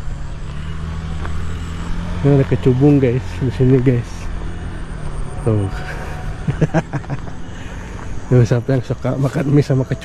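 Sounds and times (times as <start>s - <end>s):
man laughing: 5.5s - 8.0s.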